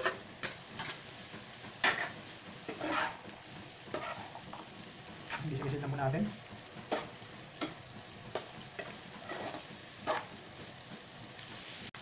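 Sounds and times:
beef and onions sizzling in pan: 0.0 - 12.0
spatula clacking against pan: 6.6 - 10.4.

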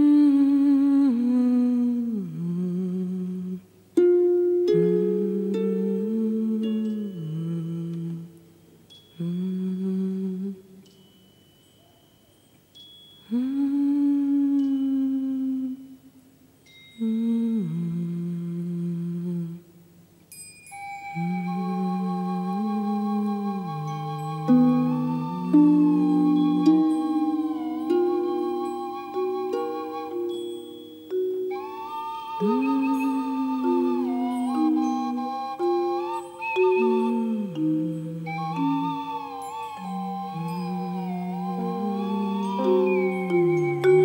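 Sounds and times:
person humming: 0.0 - 8.5, 9.2 - 11.0, 13.2 - 16.0, 17.0 - 19.8, 21.1 - 44.0.

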